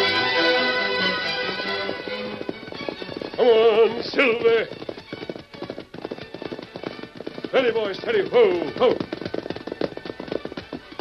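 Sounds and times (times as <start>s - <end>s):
horse hoofbeats clopping: 0.0s - 11.0s.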